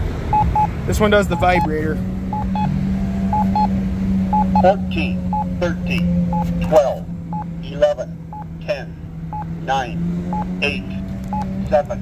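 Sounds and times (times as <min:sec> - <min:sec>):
short double beep: 0:04.3 - 0:04.7.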